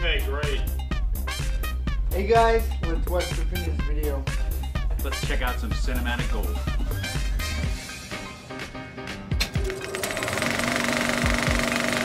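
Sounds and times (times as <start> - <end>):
film projector clatter: 9.4 - 12.0.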